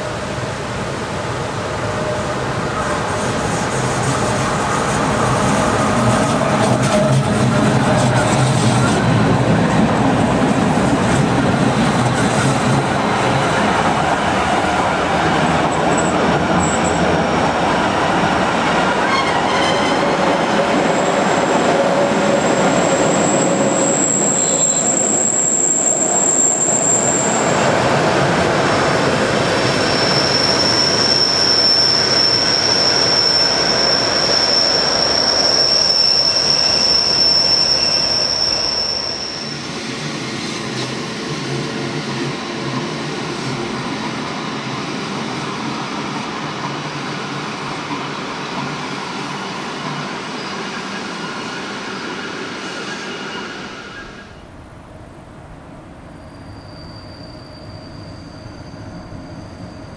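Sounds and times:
train rolling past: 0.0s - 59.9s
high-pitched wheel squealing: 22.5s - 27.6s, 29.4s - 39.7s, 56.2s - 59.9s.

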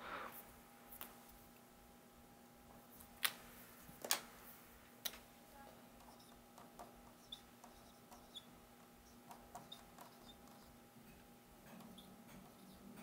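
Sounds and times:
pen writing on paper: 9.5s - 10.7s.

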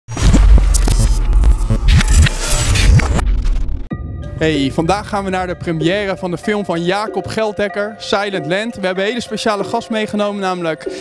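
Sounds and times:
crackling clicks: 0.2s - 3.9s
loud deep hum: 0.2s - 6.7s.

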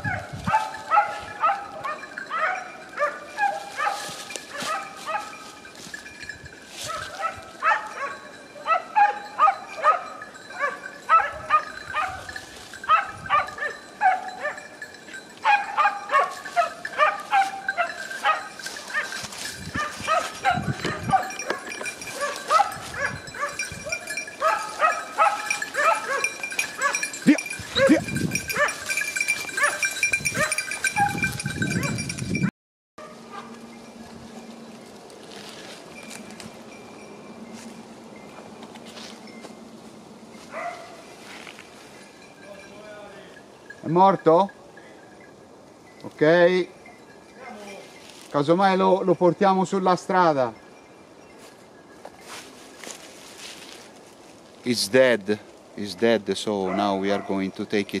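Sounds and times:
hunting dogs baying: 0.0s - 5.8s, 6.8s - 32.2s, 39.5s - 41.4s, 56.5s - 57.6s.

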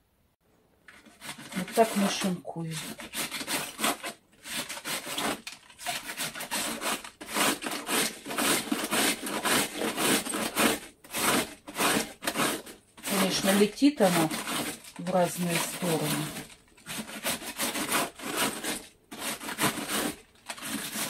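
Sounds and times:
knife shredding cabbage: 0.9s - 21.0s.

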